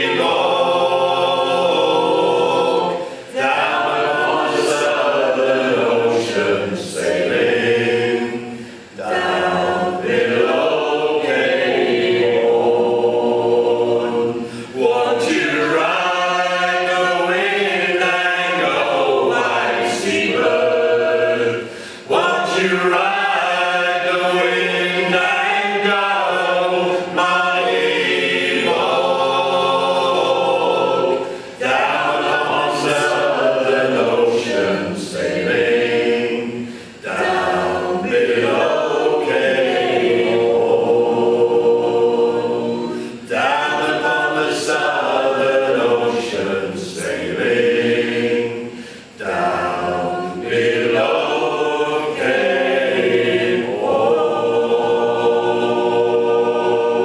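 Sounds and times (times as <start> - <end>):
group singing a cappella: 0.0 - 57.0.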